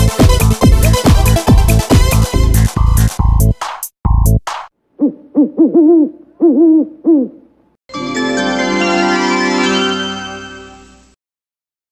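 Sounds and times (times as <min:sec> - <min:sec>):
owl hoots: 0:05.0 - 0:07.5.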